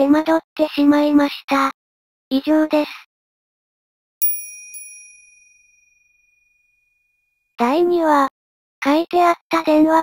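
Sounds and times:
high-pitched bell chime: 0:04.2 - 0:07.2.

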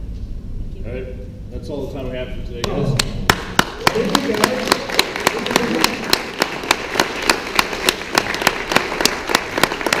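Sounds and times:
sharp hand claps close by: 0:02.6 - 0:10.0
audience applauding: 0:03.0 - 0:10.0.

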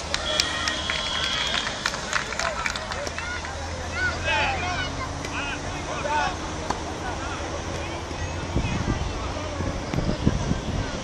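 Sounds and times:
children calling and shouting: 0:00.0 - 0:11.0
murmur of chatter: 0:00.0 - 0:11.0.

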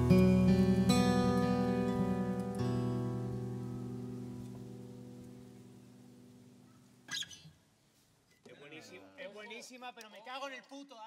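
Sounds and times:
acoustic guitar and piano notes: 0:00.0 - 0:07.4.

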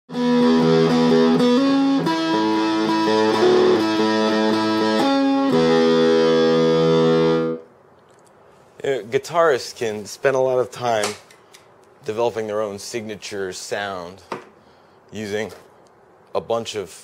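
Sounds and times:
distorted electric guitar riff: 0:00.1 - 0:07.7.

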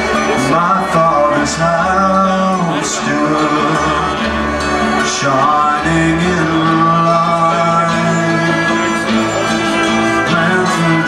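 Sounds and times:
banjo: 0:00.0 - 0:11.0
held melodic lead: 0:00.0 - 0:11.0
strummed acoustic guitars: 0:00.0 - 0:11.0
upright bass: 0:00.0 - 0:11.0.

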